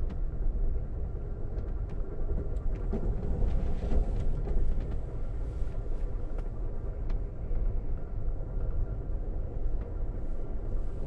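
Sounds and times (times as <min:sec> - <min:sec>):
train running low rumble: 0:00.0 - 0:11.0.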